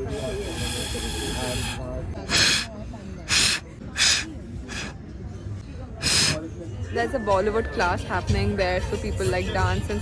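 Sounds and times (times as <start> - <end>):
breath blown through straw: 0.0 - 5.0, 6.0 - 6.4.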